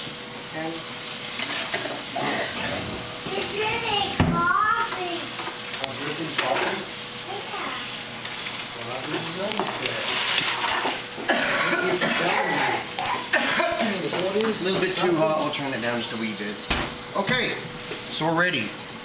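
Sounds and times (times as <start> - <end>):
butter sizzling in skillet: 0.0 - 19.0.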